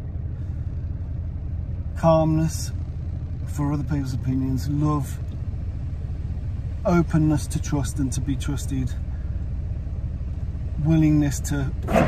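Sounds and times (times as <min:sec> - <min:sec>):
road noise: 0:00.0 - 0:12.0
van engine rumble: 0:00.0 - 0:12.0.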